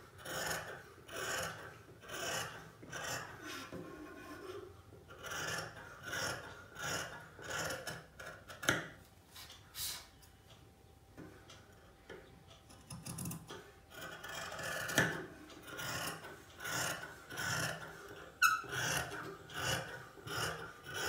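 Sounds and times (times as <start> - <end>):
shears cutting fabric: 0.2 - 9.0, 12.8 - 21.0.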